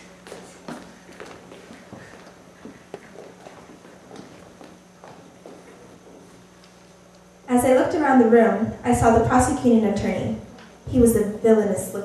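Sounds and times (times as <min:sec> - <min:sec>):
faint footsteps walking: 0:00.0 - 0:07.4
low steady hum: 0:00.0 - 0:12.0.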